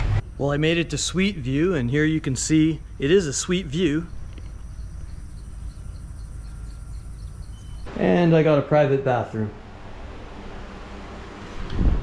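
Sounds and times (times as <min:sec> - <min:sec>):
wind noise on microphone: 0:11.4 - 0:12.0.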